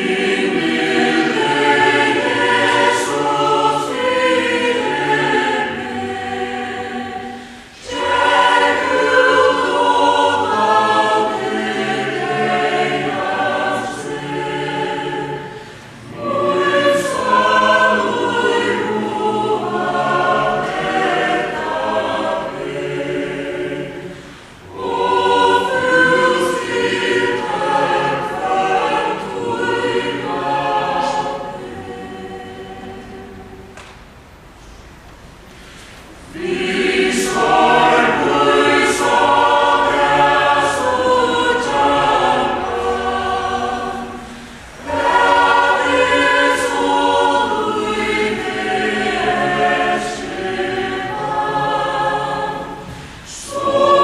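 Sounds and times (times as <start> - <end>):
choir singing a hymn: 0.0 - 34.0, 35.5 - 54.0.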